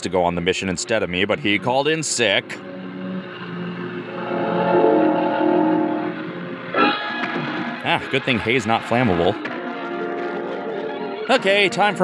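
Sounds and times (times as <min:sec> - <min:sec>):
pitched drone: 0:00.0 - 0:12.0
held tones: 0:04.0 - 0:07.0.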